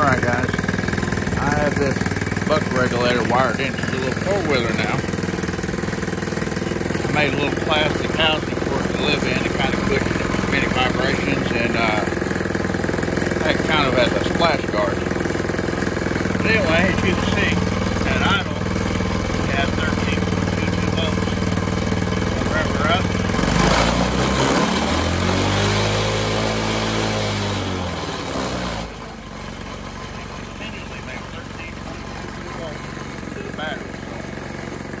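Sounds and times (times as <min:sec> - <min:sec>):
small engine idling and revving: 0:00.0 - 0:35.0.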